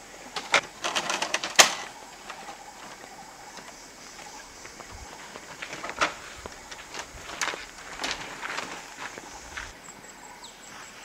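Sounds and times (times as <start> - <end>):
wooden knocks and rattles: 0.4 - 9.2.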